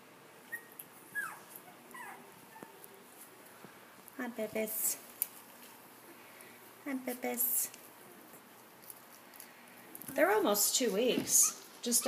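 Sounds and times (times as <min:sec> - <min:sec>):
puppies whimpering and squeaking: 0:00.5 - 0:02.8, 0:11.4 - 0:12.0.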